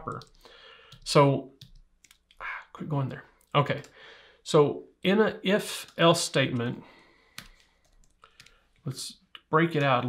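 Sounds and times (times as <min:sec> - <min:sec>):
computer keyboard keystrokes: 0:00.1 - 0:02.4, 0:07.3 - 0:08.6.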